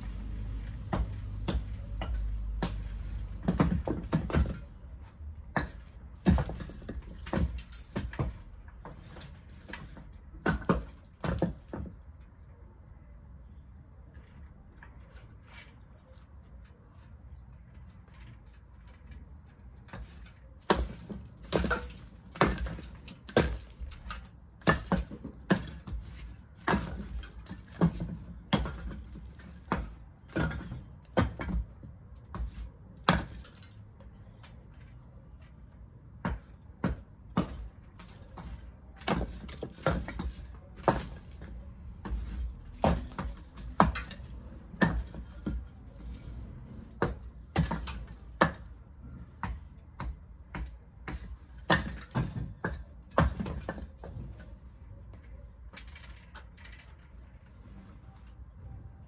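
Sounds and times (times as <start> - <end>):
bricks being knocked loose: 0.8 - 12.1, 19.8 - 33.7, 36.2 - 45.8, 46.9 - 54.4.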